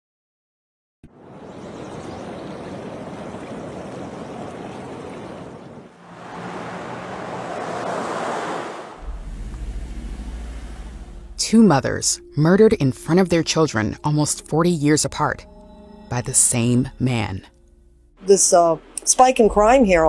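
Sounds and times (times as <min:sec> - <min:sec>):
car driving past: 0:05.9 - 0:11.4
steady rushing noise: 0:06.0 - 0:11.6
low steady rumble: 0:09.0 - 0:14.6.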